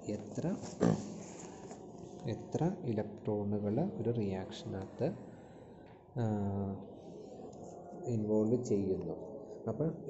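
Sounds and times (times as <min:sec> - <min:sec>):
man speaking: 0:00.0 - 0:01.1, 0:02.3 - 0:05.2, 0:06.2 - 0:06.9, 0:08.0 - 0:10.0.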